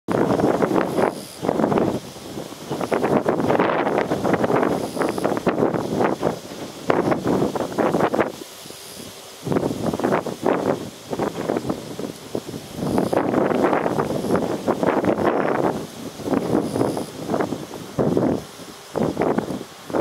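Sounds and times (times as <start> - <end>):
wind buffeting microphone: 0.1 - 20.0.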